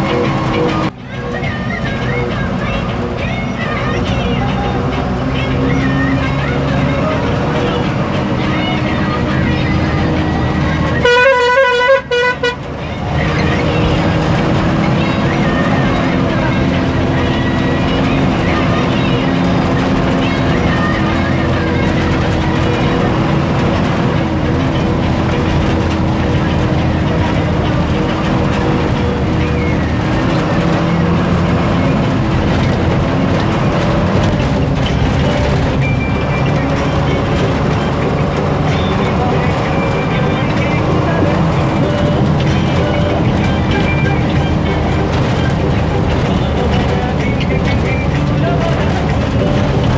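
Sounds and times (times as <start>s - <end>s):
vehicle engine driving: 0.0s - 49.9s
vehicle horn honking: 10.6s - 14.3s.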